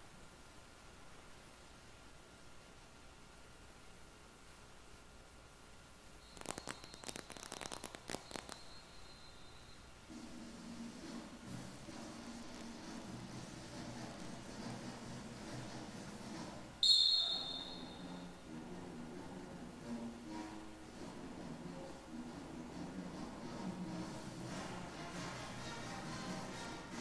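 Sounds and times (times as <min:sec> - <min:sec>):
clicks with thin high tone: 0:06.2 - 0:09.9
quiet band music: 0:10.1 - 0:27.0.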